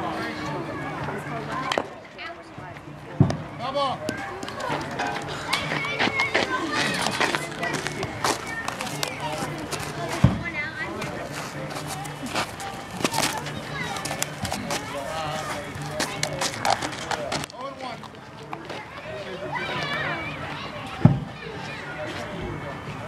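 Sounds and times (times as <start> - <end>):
voices chattering: 0.0 - 23.0.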